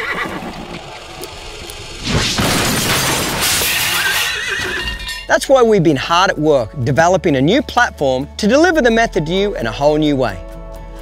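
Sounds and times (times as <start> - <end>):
horse whinnying: 0.0 - 0.8, 3.9 - 5.1.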